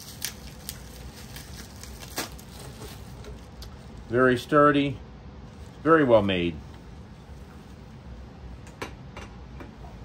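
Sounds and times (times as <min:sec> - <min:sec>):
bubble wrap rustling: 0:00.0 - 0:04.6, 0:05.4 - 0:08.0.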